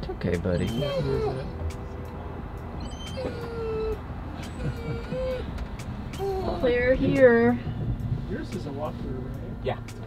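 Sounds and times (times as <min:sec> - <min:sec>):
vehicle interior rumble: 0:00.0 - 0:10.0
dog whining: 0:00.5 - 0:01.7, 0:02.7 - 0:07.0.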